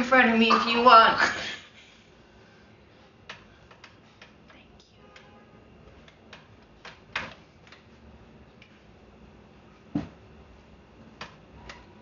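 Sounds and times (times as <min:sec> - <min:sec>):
small clicks and taps: 0:03.2 - 0:04.6, 0:06.0 - 0:07.9.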